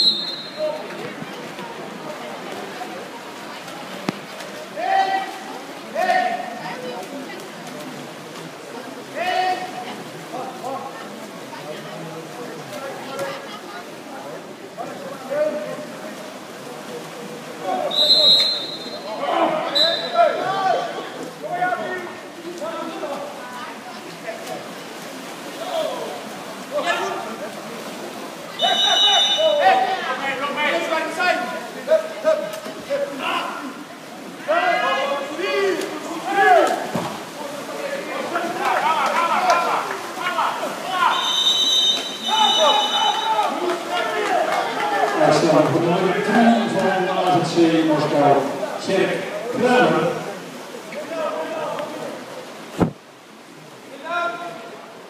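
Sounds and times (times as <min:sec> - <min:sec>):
referee's whistle blasts: 0:00.0 - 0:00.8, 0:17.9 - 0:19.1, 0:19.7 - 0:20.2, 0:28.6 - 0:29.6, 0:41.1 - 0:43.4
voices shouting: 0:28.6 - 0:31.4, 0:37.8 - 0:45.3.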